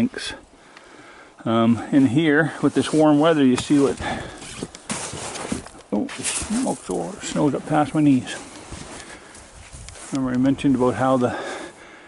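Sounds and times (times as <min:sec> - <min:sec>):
snow rustling against clothing: 0:01.7 - 0:12.0
footsteps crunching through snow: 0:01.9 - 0:11.8.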